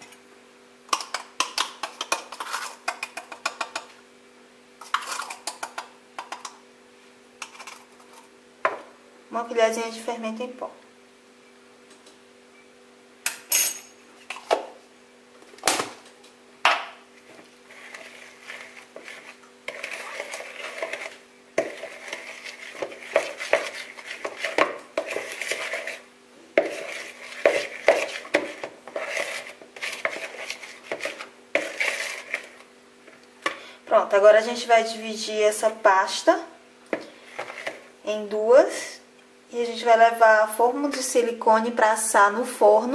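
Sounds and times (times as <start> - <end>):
faint steady hum: 0.0 - 42.9
spoon stirring thick batter: 0.9 - 3.9, 4.8 - 6.6, 17.2 - 33.7, 36.9 - 38.0.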